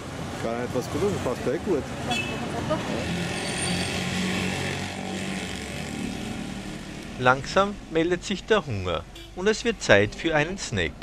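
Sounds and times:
motor traffic: 0.0s - 11.0s.

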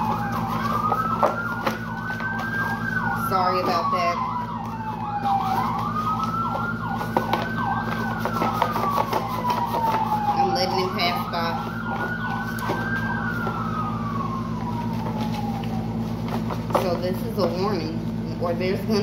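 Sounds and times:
cards and cardboard box rustling: 0.0s - 13.9s, 14.7s - 17.7s
steady low hum: 0.0s - 19.0s
wailing siren: 0.0s - 19.0s
yelping siren: 0.0s - 19.0s.

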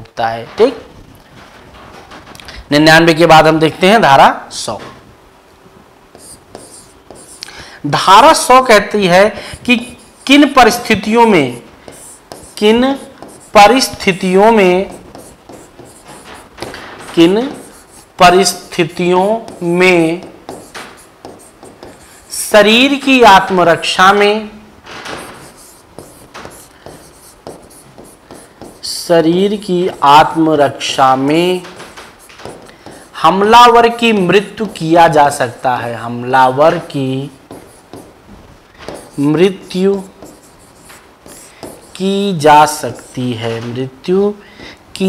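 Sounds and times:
chalk scratching on blackboard: 6.1s - 7.5s, 9.6s - 24.0s, 25.1s - 34.0s, 36.7s - 38.2s, 38.8s - 43.4s.

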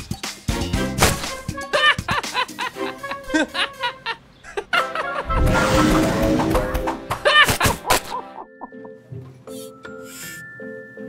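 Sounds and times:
character giggling and snickering: 1.6s - 5.4s, 7.1s - 8.7s
rumbling whoosh: 5.2s - 7.1s.

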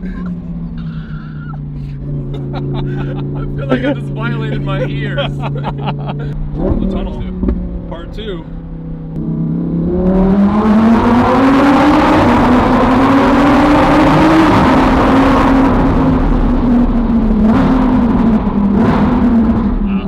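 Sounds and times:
sports car engine revving: 0.0s - 20.0s.

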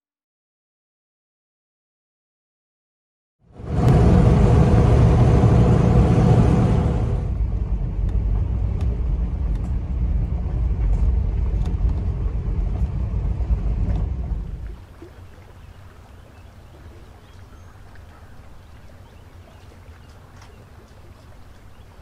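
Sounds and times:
truck rumbling on dirt road: 3.5s - 15.2s.

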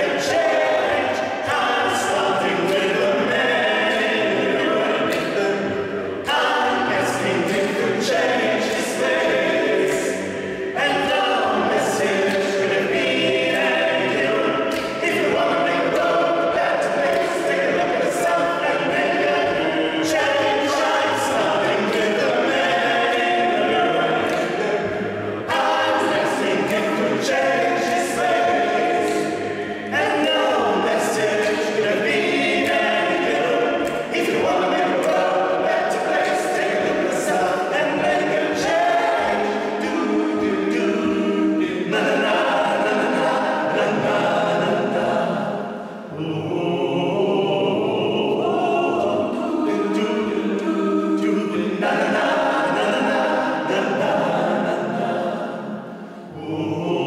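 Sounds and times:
male a cappella group singing: 0.0s - 57.0s.

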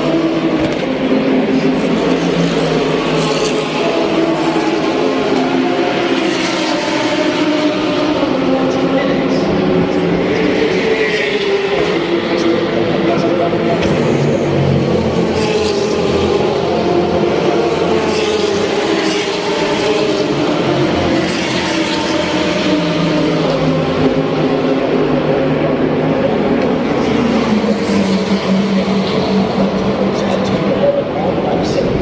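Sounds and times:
race car engines droning: 0.0s - 32.0s.

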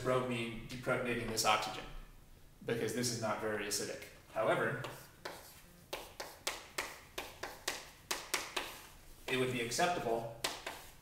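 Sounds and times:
chalk tapping on chalkboard: 4.8s - 9.7s, 10.4s - 11.0s.

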